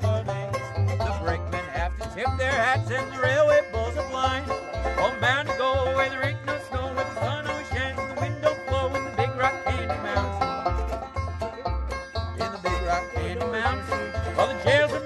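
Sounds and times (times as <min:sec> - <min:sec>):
low bass line: 0:00.0 - 0:15.0
picked banjo: 0:00.0 - 0:15.0.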